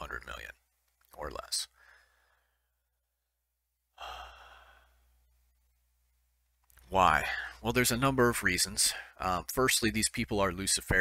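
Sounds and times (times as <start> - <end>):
man breathing close to microphone: 1.7 - 3.0, 3.9 - 5.2.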